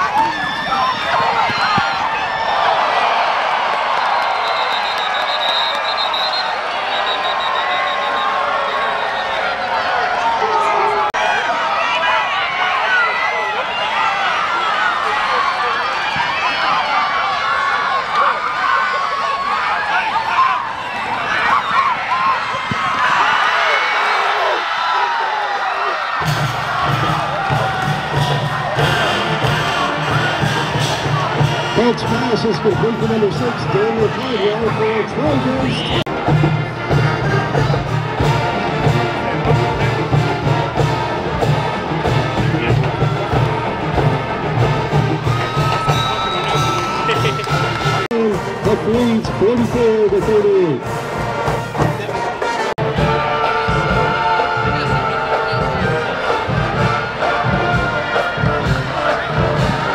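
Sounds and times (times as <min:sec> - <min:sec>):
stadium crowd cheering: 0:00.0 - 0:59.9
marching band playing: 0:26.2 - 0:59.9.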